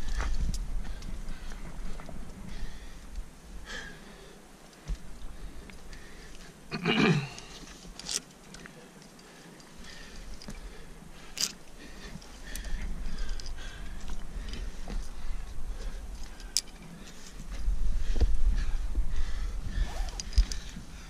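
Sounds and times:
wind rumble on microphone: 0.0 - 3.8, 12.4 - 21.0
hands and gear moving on rock: 4.6 - 6.6, 7.2 - 21.0
climbing hardware clinking: 7.2 - 18.7, 19.8 - 20.8.

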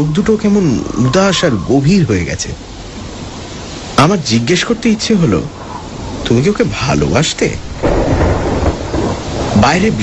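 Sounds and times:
steady rain: 0.0 - 10.0
low rumble of thunder: 5.5 - 10.0.

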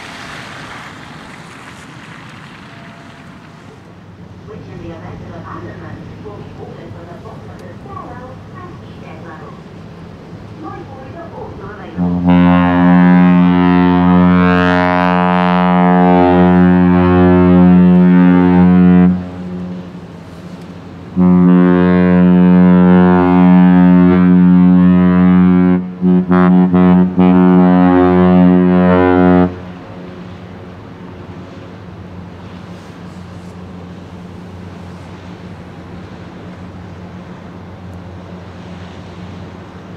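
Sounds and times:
ship's horn deep blasts: 3.7 - 39.9.

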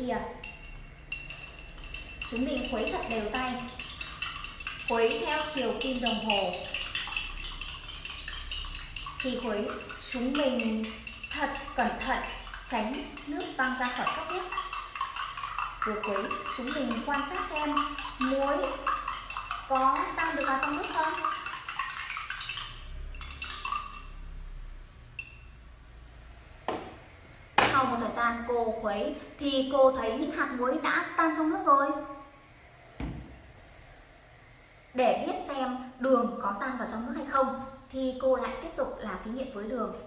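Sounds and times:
spoon clinking in a cup: 0.4 - 24.2, 25.2 - 25.6.

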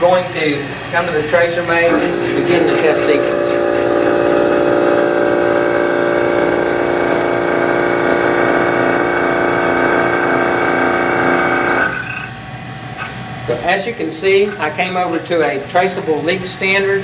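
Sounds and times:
vacuum pump humming: 1.9 - 12.1.

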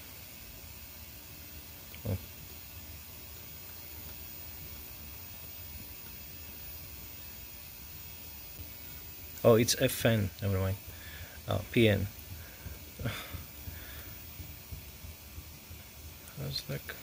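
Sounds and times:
background hiss: 0.0 - 17.0
low hum: 0.0 - 17.0.

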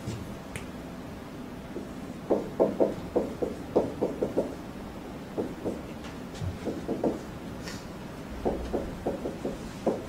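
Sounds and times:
light irregular knocks: 5.4 - 7.3, 8.4 - 10.0.

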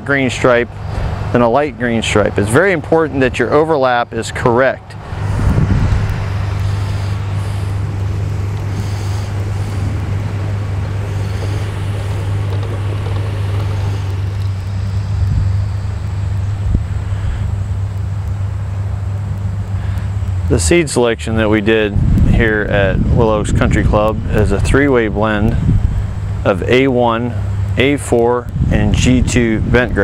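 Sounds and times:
steady low drone: 0.0 - 30.0
even rushing noise: 0.5 - 26.7.

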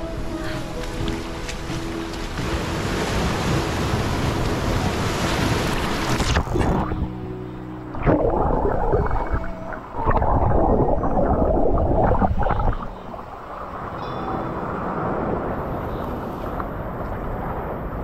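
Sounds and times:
rushing water surges: 0.0 - 7.1, 7.9 - 18.0
muffled churning sea water: 0.0 - 18.0.

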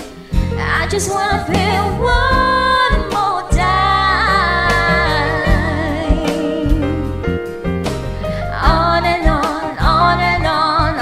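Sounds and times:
pop backing track: 0.0 - 11.0.

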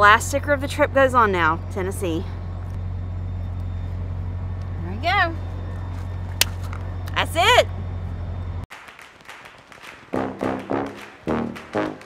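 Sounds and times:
woman speaking: 0.0 - 2.4, 4.8 - 5.5, 7.1 - 7.7
low machine hum: 0.0 - 8.7.

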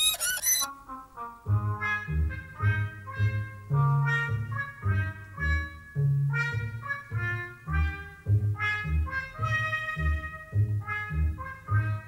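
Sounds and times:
squeaky violin sawing: 0.0 - 0.7.

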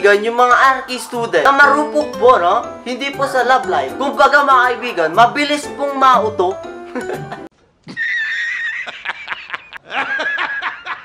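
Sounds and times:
man laughing loudly: 6.9 - 11.0.

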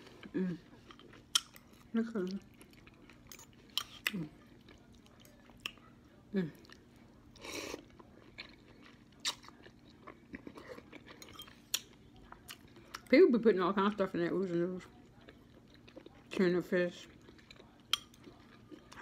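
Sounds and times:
chewing clicks and smacks: 17.1 - 19.0.

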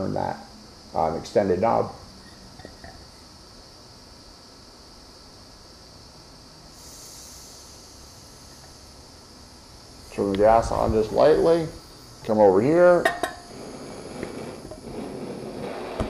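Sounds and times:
faint steady hiss: 0.0 - 16.0
propane hissing from torch nozzle: 0.0 - 16.0.

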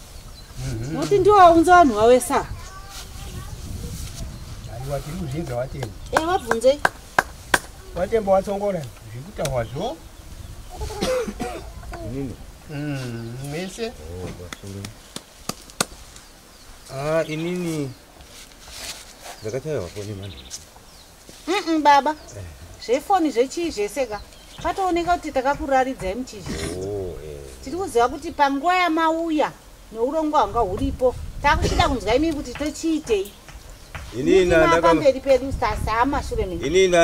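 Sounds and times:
person coughing: 11.0 - 11.7, 31.6 - 31.9
speech: 26.4 - 27.9.

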